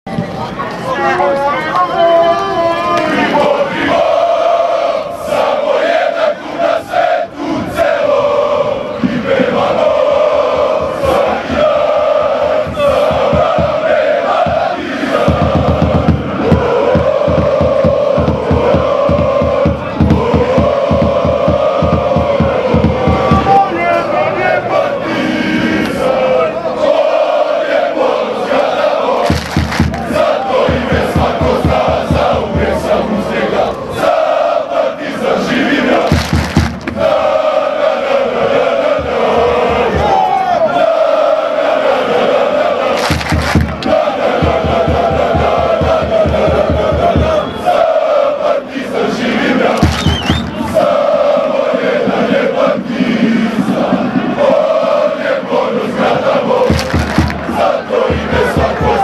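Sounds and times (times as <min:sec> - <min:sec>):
crowd chanting in unison: 0:00.8 - 0:59.0
fast rhythmic drumbeat: 0:09.5 - 0:23.7, 0:29.2 - 0:33.1, 0:35.9 - 0:37.8, 0:38.4 - 0:40.4, 0:42.9 - 0:47.7, 0:49.5 - 0:59.0.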